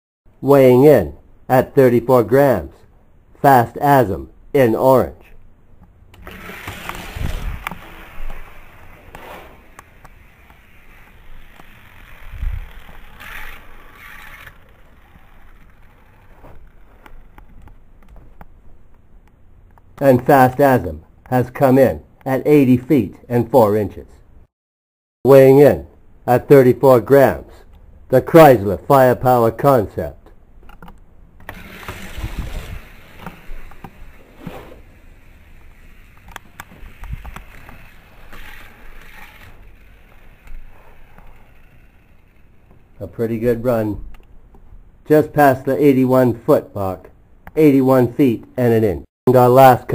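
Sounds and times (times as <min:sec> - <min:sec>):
toy car rolling on plastic track: 0:06.2 - 0:17.4, 0:31.4 - 0:43.0.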